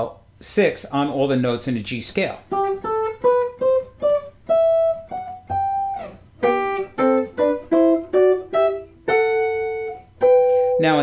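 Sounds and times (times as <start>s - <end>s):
electric guitar picking: 2.5s - 11.0s.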